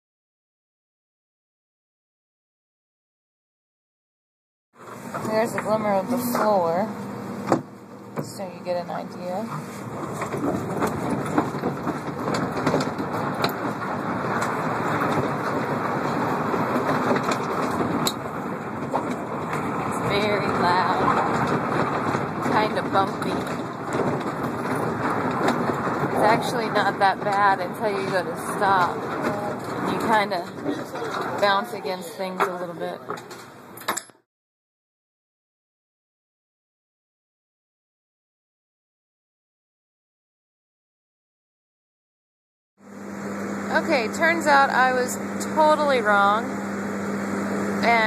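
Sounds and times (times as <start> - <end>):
container rolling bumpy rumble: 8.2 - 33.8, 43.7 - 48.0.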